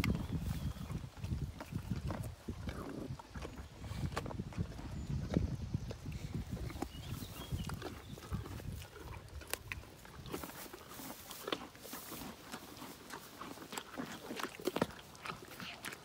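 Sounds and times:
dogs sniffing and snuffling: 0.0 - 16.0.

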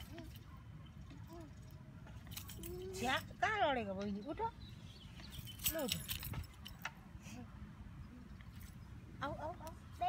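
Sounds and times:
sharp clinks: 5.2 - 6.9.

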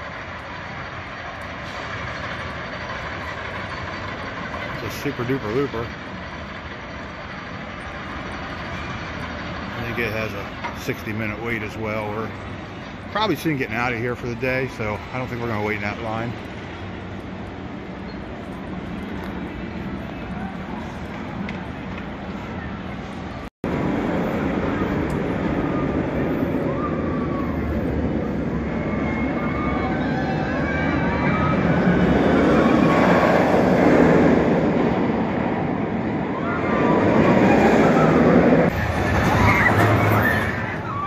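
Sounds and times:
outdoor park background: 0.0 - 41.0
roller coaster rumbling on track: 0.0 - 41.0.

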